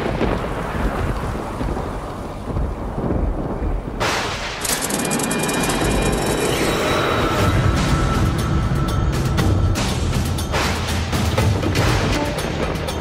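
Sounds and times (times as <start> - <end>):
rolling thunder: 0.0 - 4.6
rain: 0.0 - 9.4.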